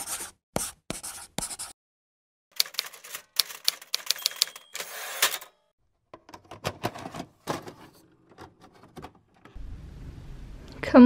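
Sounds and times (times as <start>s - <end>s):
typewriter key strikes: 2.6s - 4.8s.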